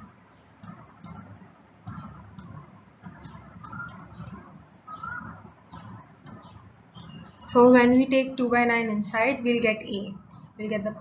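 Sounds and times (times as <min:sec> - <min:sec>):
stylus clicks on pen tablet: 0:01.9 - 0:04.4.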